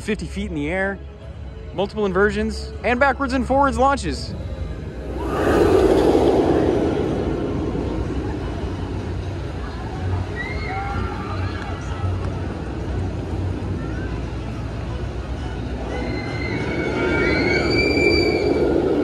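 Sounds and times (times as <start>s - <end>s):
roller coaster train rushing on track: 4.9s - 19.0s
distant voices of riders and crowd: 5.5s - 17.4s.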